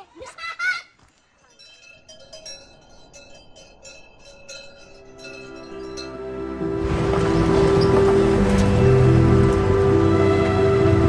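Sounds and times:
cattle bells clanking: 1.3 - 6.2, 6.8 - 9.6.

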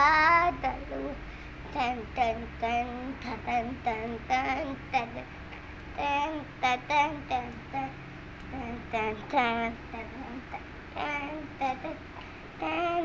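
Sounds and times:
young girl singing unaccompanied: 0.0 - 13.0.

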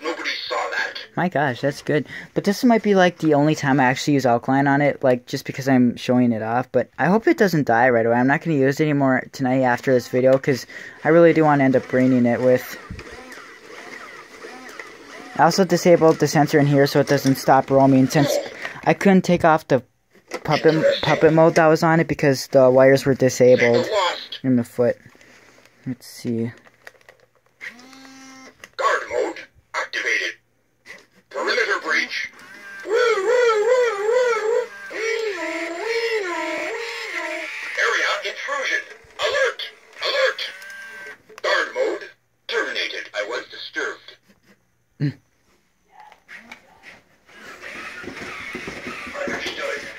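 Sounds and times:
toy robot motors whirring: 11.0 - 18.7, 27.6 - 28.5, 31.4 - 41.2, 46.3 - 49.9
garbled robotic chatter: 20.5 - 21.7, 31.4 - 40.6.

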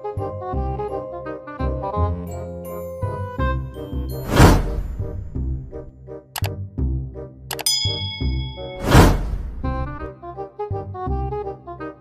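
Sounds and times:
background music: 0.0 - 12.0
rising whoosh: 4.1 - 5.9, 8.7 - 10.1
sharp click: 6.4 - 6.6, 7.5 - 7.7
bell ding: 7.5 - 9.2.

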